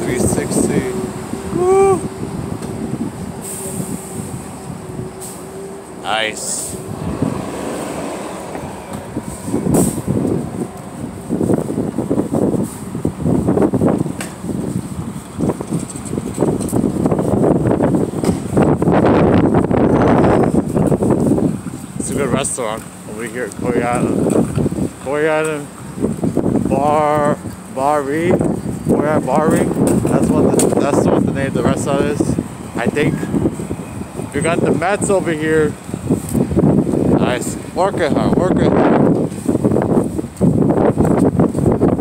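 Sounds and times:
passing traffic: 0.0s - 42.0s
wind buffeting microphone: 0.0s - 42.0s.

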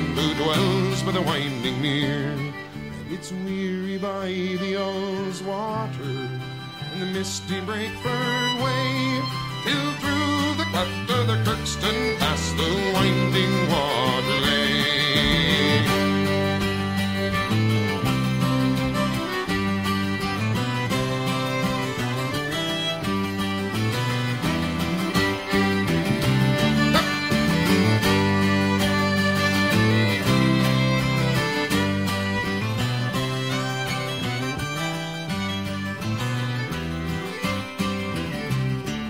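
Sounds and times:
fiddle playing: 0.0s - 39.0s
guitar: 0.0s - 39.0s
low steady bass line: 13.2s - 19.3s.

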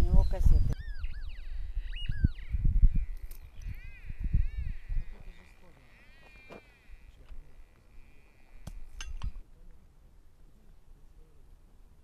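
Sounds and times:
bird chirps: 0.1s - 7.0s.

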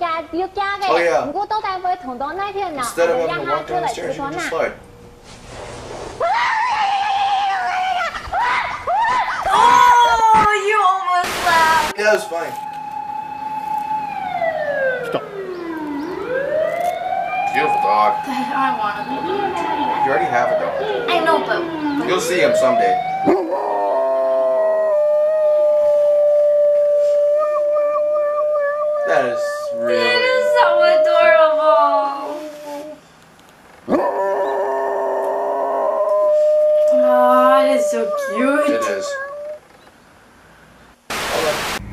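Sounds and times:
dog howling: 6.2s - 10.5s, 19.1s - 33.0s, 33.9s - 39.7s.

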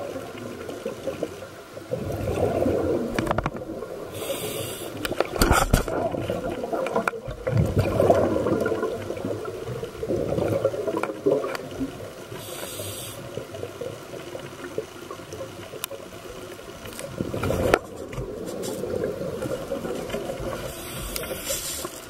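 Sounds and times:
underwater bubbling and gurgling: 0.0s - 22.0s
brief hiss: 4.2s - 5.8s, 12.4s - 13.2s.

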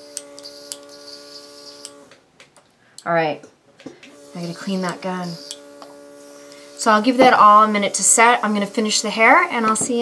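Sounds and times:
airbrush compressor humming and hissing: 0.0s - 2.2s, 3.9s - 10.0s.

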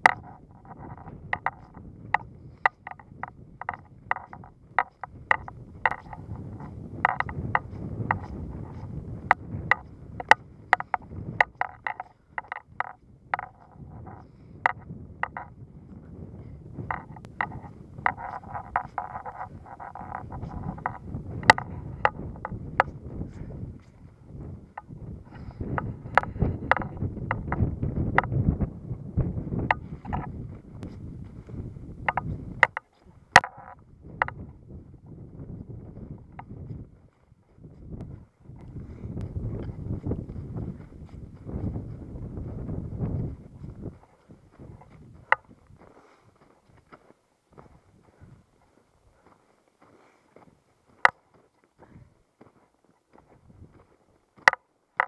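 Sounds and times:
sharp clicks: 0.0s - 15.5s, 16.9s - 23.0s, 24.7s - 28.4s
wind rumble on microphone: 0.0s - 55.0s.

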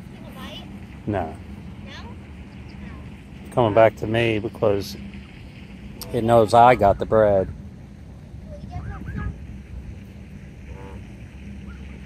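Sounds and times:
wind rumbling on microphone: 4.0s - 12.0s.

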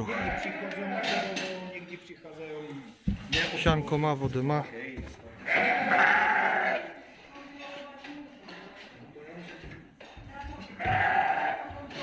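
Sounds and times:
sheep bleating: 0.0s - 1.4s, 5.4s - 7.0s, 10.8s - 11.7s.

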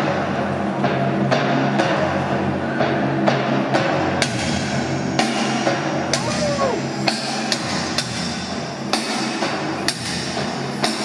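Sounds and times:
arena noise: 6.2s - 7.0s.

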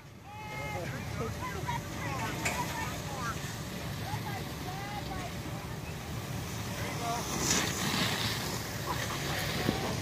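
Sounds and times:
wind rumble on microphone: 6.3s - 10.0s.

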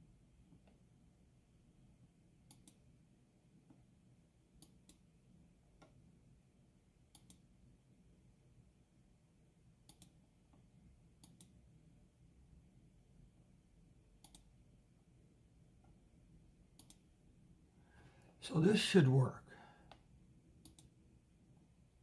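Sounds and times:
faint computer mouse clicks: 2.4s - 2.8s, 4.6s - 5.0s, 7.1s - 7.4s, 9.8s - 10.6s, 11.2s - 11.6s, 14.2s - 14.5s, 16.8s - 17.1s, 19.9s - 21.0s.

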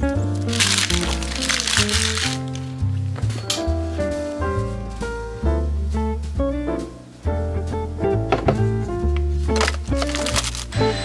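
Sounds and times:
background music melody: 0.0s - 11.0s
packaging paper crinkling: 0.1s - 2.8s, 9.5s - 10.8s.

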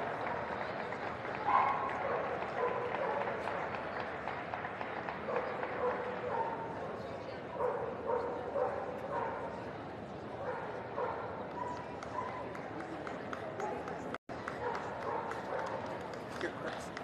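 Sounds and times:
murmur of voices: 0.0s - 17.0s
dog barking: 1.5s - 3.3s, 7.6s - 9.5s, 10.4s - 12.4s, 14.6s - 15.8s.

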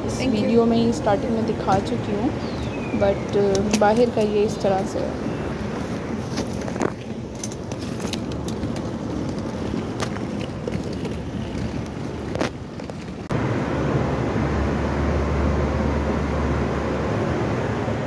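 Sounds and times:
outdoor noise: 0.0s - 18.0s
suitcase rolling on tiled floor: 5.3s - 13.3s.

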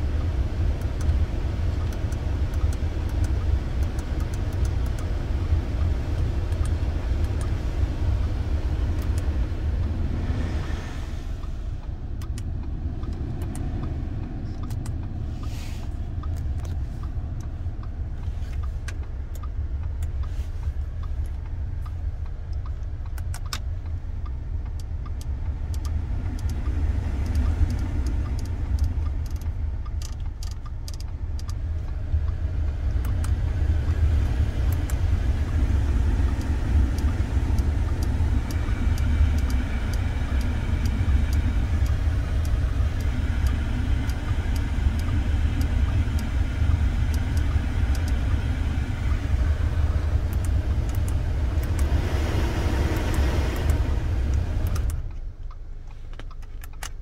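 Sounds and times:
low engine idle rumble: 0.0s - 57.0s
light clicks: 0.2s - 5.2s, 11.4s - 35.6s, 50.0s - 52.0s, 52.9s - 57.0s
blower fan blowing air: 25.0s - 55.1s.

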